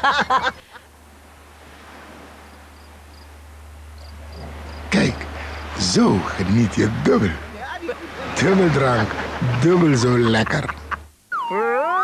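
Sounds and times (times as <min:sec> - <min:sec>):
crickets chirping: 0:00.0 - 0:11.1
steady low hum: 0:00.0 - 0:11.3.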